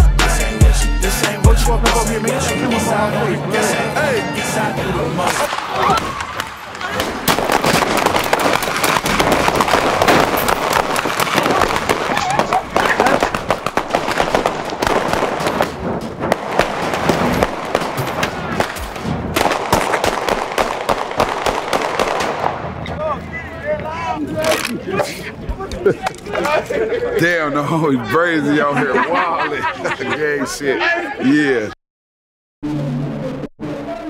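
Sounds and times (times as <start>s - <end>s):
voices shouting: 2.0s - 7.5s, 10.8s - 13.6s
rapid popping and crackling: 5.3s - 22.7s.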